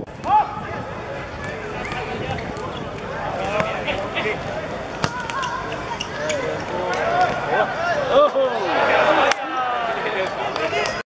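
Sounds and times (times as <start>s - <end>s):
players calling out: 0.2s - 11.0s.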